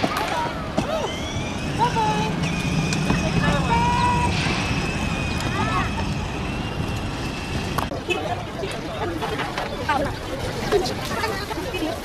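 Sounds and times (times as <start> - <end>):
toy car electric motor whirring: 0.4 - 7.9.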